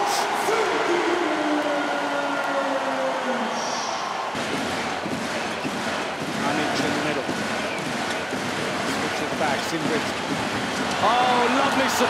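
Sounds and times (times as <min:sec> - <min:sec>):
crowd cheering: 0:00.0 - 0:12.0.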